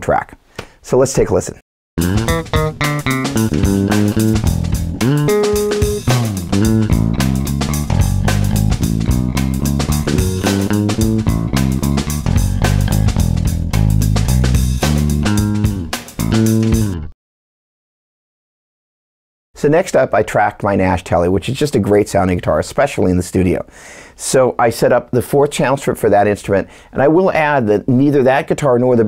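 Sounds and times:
drum loop: 2.0 - 17.1
fingerstyle electric bass: 2.0 - 17.1.

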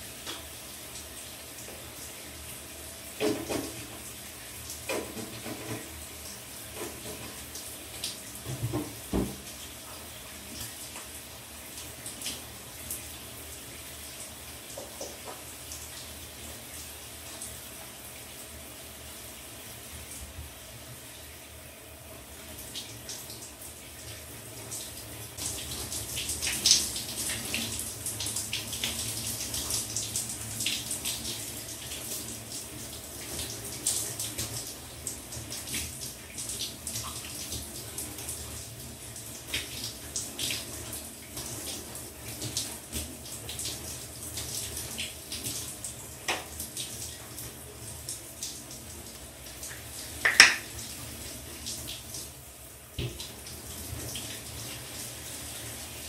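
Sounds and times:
shower water running: 0.0 - 56.0
water splashing: 50.2 - 50.8.

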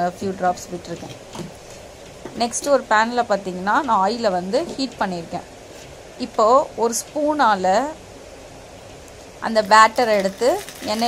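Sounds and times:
woman speaking: 0.0 - 1.2, 2.4 - 5.5, 6.2 - 8.0, 9.4 - 11.0
low steady background hum: 0.0 - 11.0.

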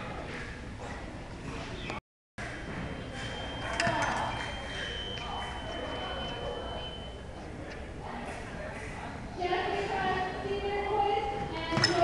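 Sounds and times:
voices in a hall: 0.0 - 12.0.

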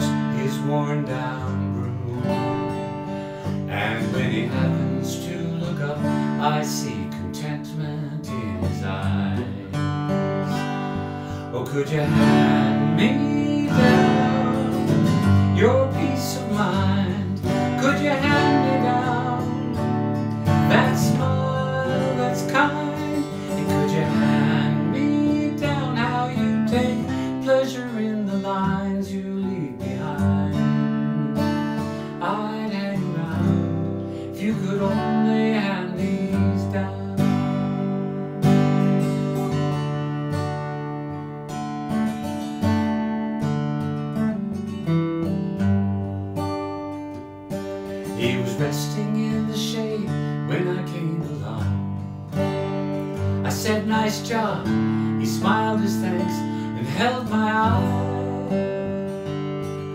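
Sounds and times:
acoustic guitar strummed and picked: 0.0 - 59.9.

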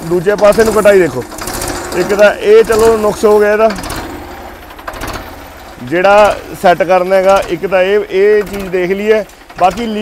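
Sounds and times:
tractor engine idling: 0.0 - 10.0.

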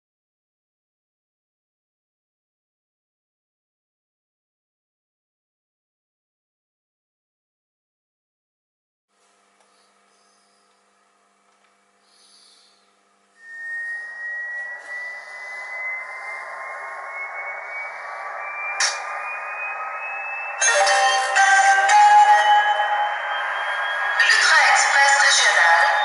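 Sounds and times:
dense louder sound layer: 13.4 - 26.0
model turbine whine: 13.4 - 26.0.

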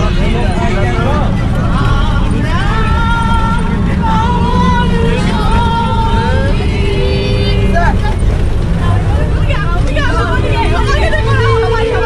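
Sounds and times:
people singing: 0.0 - 8.1
bus engine and road rumble: 0.0 - 12.0
people talking: 0.0 - 12.0.

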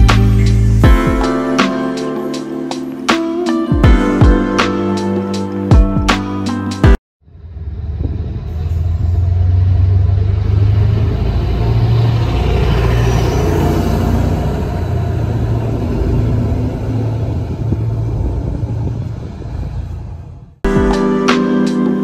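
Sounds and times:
passenger train running past: 7.6 - 20.6.

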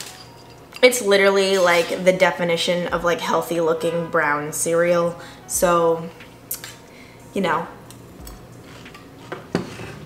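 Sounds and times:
metal spoon clinking ceramic bowl: 0.0 - 1.1.

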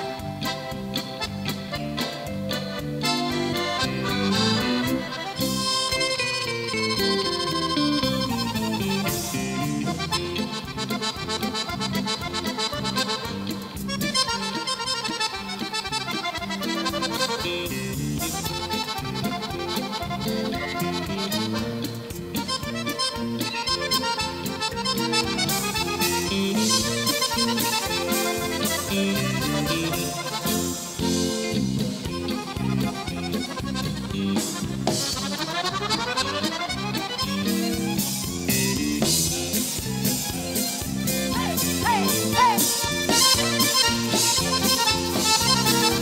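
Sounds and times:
accordion playing lively tune: 0.0 - 46.0
electric guitar accompanying: 0.0 - 46.0.

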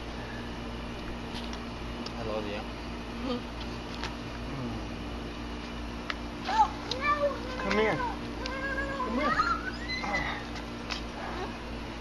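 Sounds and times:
low steady hum: 0.0 - 12.0
high-pitched gliding cries: 8.5 - 10.6.

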